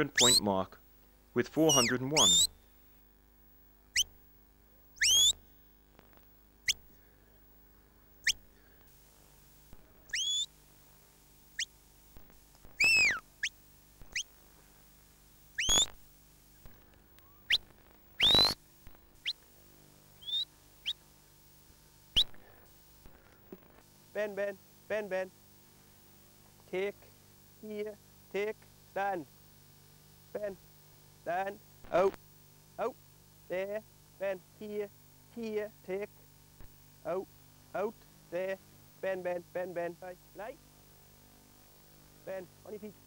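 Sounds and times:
shepherd whistle notes: 0.1 - 0.4, 1.6 - 2.5, 5.0 - 5.4, 10.1 - 10.5, 12.8 - 13.2, 15.6 - 15.9, 18.2 - 18.6, 20.2 - 20.5.

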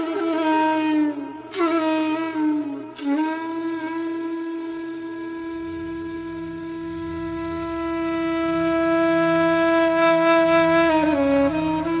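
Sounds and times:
flute holding long note: 0.0 - 12.0
faint low drone: 4.5 - 12.0.

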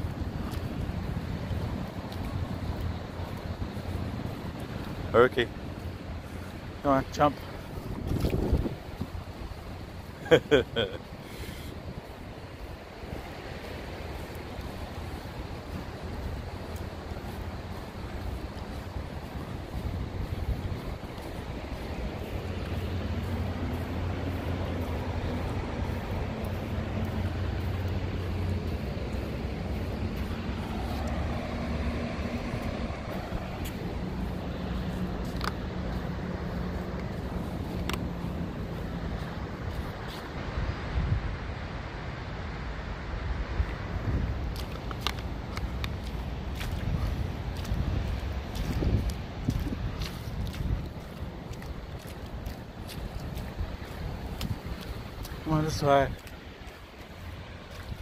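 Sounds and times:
faint distant engine hum: 0.0 - 58.0
wind rumble on microphone: 0.0 - 58.0.

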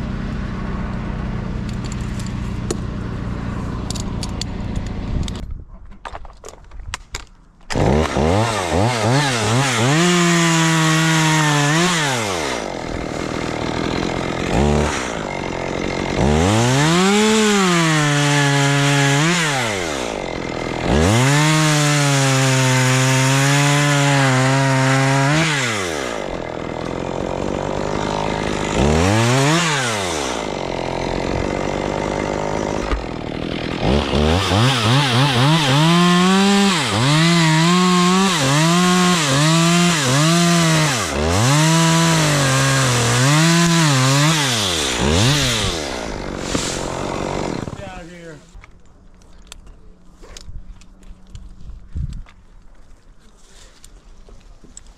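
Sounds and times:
chainsaw cutting wood: 0.0 - 5.4, 7.6 - 48.5.

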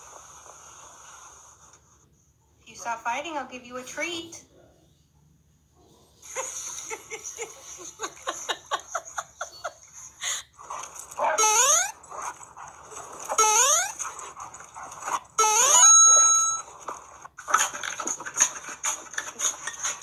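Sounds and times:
dog whining cries: 11.2 - 12.3, 13.2 - 16.7
dog yipping: 11.2 - 16.6.

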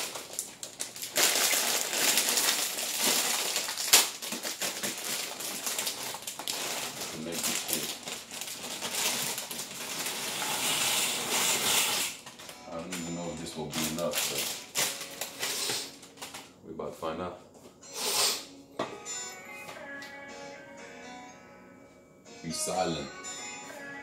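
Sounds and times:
plastic bag rustling: 0.0 - 16.6.

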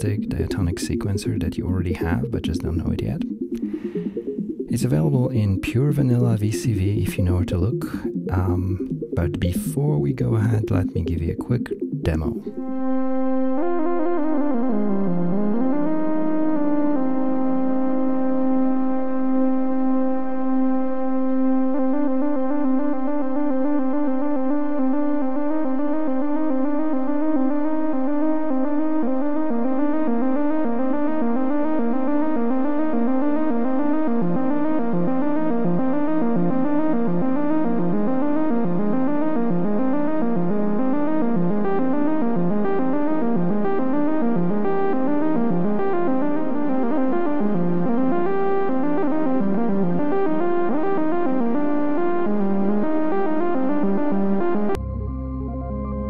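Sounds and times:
synthesizer sequence with reverb: 0.0 - 56.0.

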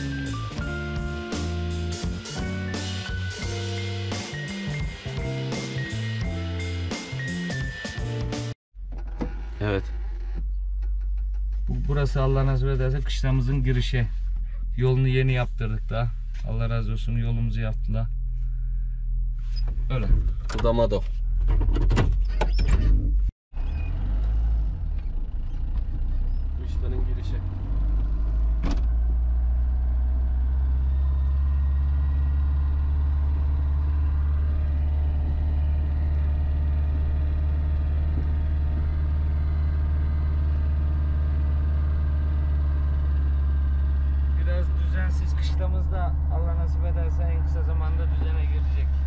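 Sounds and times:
car engine drone from inside: 8.8 - 20.5, 21.1 - 49.0.

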